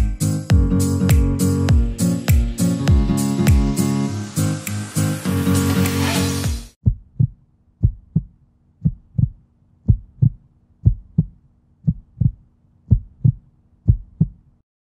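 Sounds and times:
heartbeat thumps: 0.0 - 3.8, 6.5 - 14.5.

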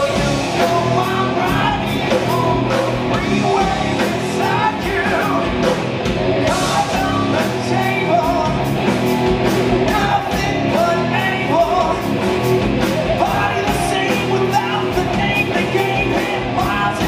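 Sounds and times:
bass guitar: 0.0 - 17.0
distorted electric guitars: 0.0 - 17.0
drum kit with cymbal hits: 0.0 - 17.0.

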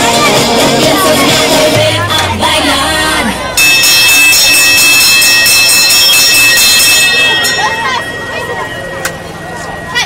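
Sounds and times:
bell ringing rapidly: 3.6 - 10.0.

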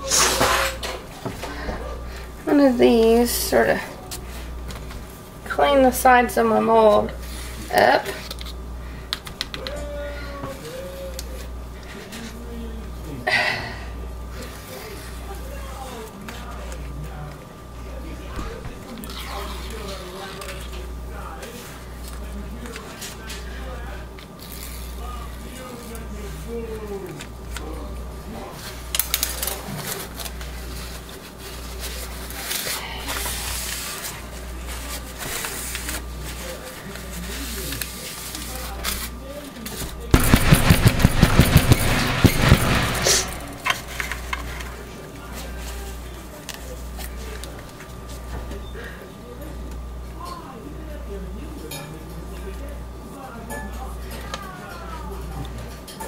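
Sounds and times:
steady low hum: 0.0 - 50.2
rapid knocking: 40.2 - 43.7.

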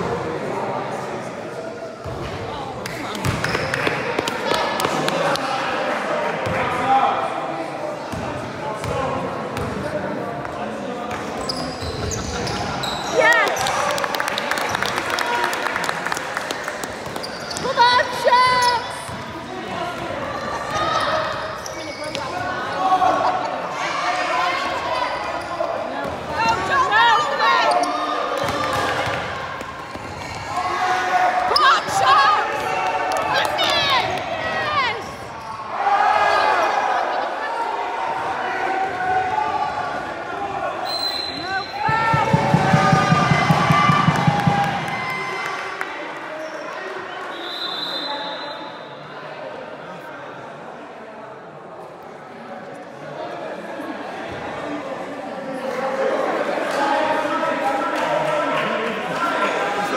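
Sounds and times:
sneakers squeaking: 2.9 - 4.0, 9.6 - 9.8, 11.1 - 13.7, 16.6 - 23.0, 24.7 - 30.5
basketball bouncing on court: 3.2 - 3.9
players shouting: 30.2 - 45.6.

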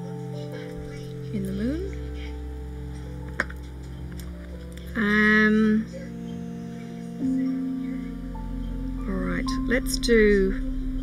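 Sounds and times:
background music sustained notes: 0.0 - 11.0.

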